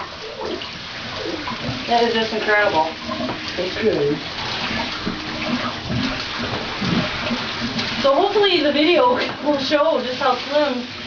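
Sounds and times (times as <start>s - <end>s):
shower water running: 0.0s - 11.0s.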